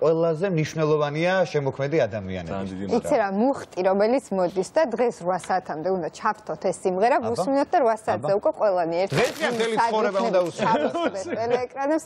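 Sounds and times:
man laughing: 10.6s - 11.7s.

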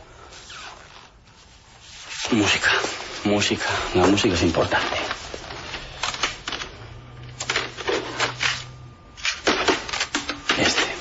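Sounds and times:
faint low hum: 0.0s - 11.0s
plastic cd cases clattering: 4.0s - 11.0s.

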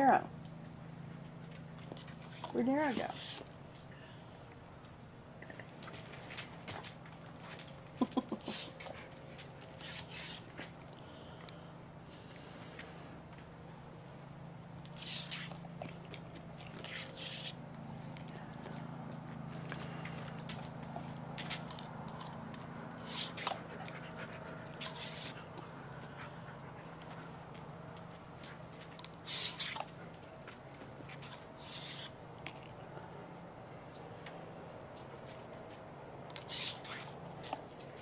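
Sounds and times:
steady low hum: 0.0s - 38.0s
dog panting and snapping: 5.4s - 11.0s, 14.9s - 32.9s, 34.2s - 38.0s.

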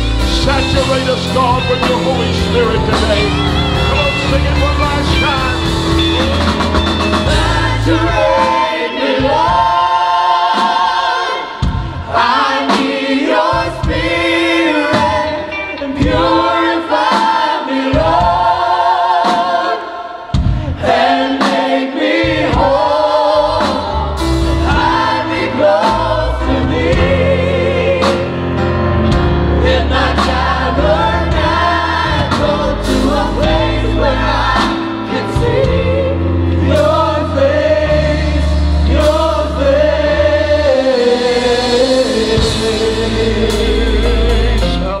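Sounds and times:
group singing in harmony: 0.0s - 45.0s
live band playing: 0.0s - 45.0s.

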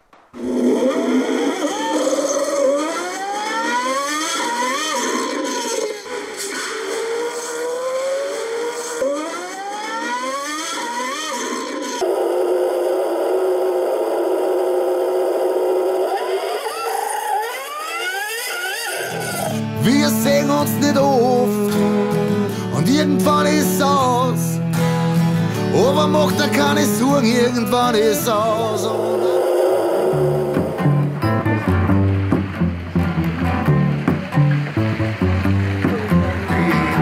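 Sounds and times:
motor revving: 0.4s - 37.0s.

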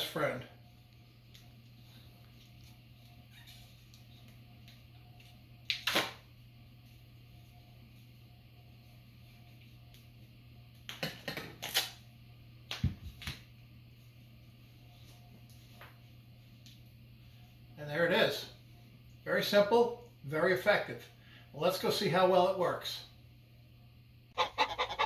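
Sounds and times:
duct tape ripping off roll: 5.7s - 6.2s, 11.6s - 12.0s.

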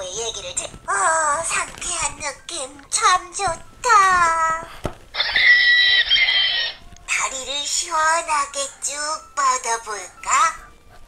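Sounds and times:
high screechy dinosaur call: 5.2s - 6.8s.

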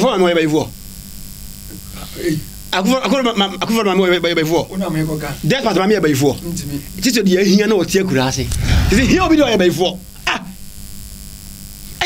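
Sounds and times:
steady low hum: 5.6s - 10.2s.

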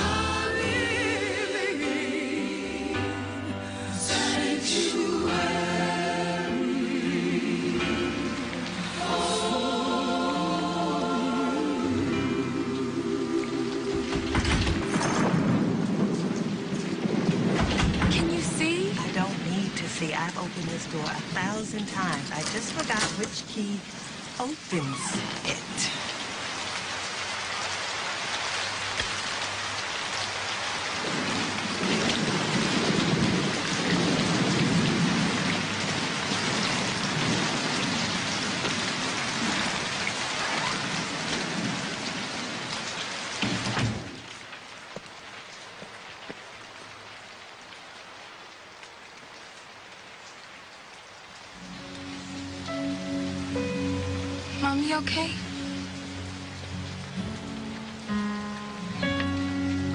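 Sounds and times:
heavy rain falling: 0.0s - 59.9s
low rumble of thunder: 13.9s - 20.6s, 30.9s - 44.3s
music with held notes: 51.6s - 59.9s.

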